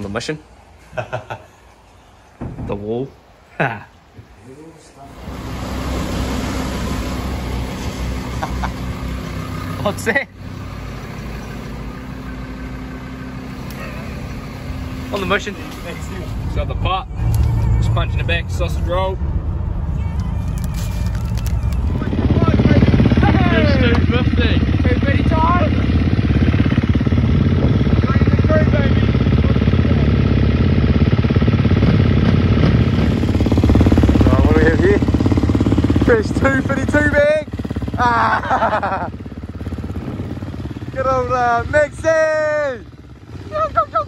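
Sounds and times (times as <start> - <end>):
car engine hum: 5.0 - 44.0
tyres hissing on wet road: 5.2 - 8.7.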